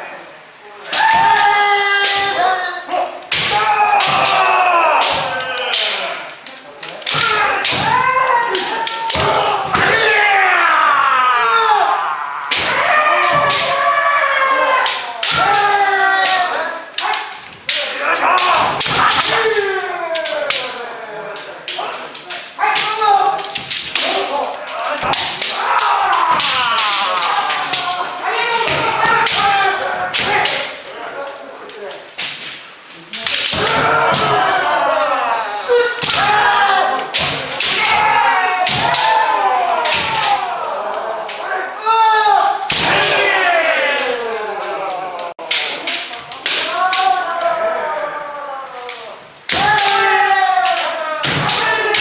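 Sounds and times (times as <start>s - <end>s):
people shouting: 0.0s - 31.5s, 32.2s - 52.0s
bamboo swords clacking: 0.9s - 10.4s, 12.5s - 31.0s, 31.6s - 35.0s, 35.7s - 41.6s, 42.6s - 43.4s, 45.4s - 52.0s.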